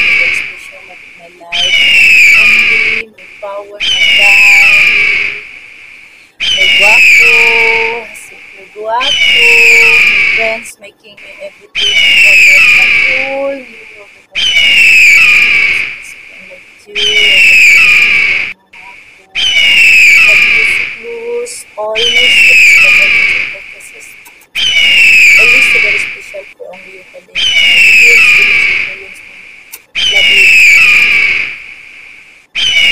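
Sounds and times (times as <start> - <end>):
bird of prey screaming: 0.0 - 10.7, 11.3 - 16.4, 17.0 - 18.6, 19.3 - 21.0, 22.0 - 31.9, 32.5 - 32.9
eagle chattering whistle call: 1.5 - 5.4, 6.4 - 8.4, 11.2 - 16.1, 17.0 - 21.0, 22.0 - 26.4, 27.4 - 29.0, 29.7 - 31.5.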